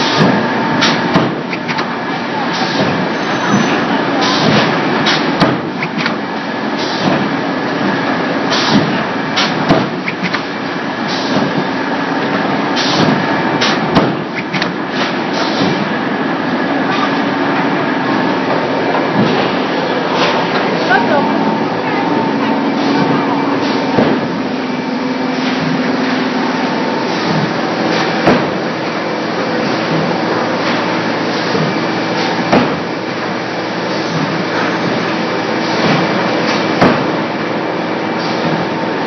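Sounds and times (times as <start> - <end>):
machine running steadily: 0.0 - 39.0.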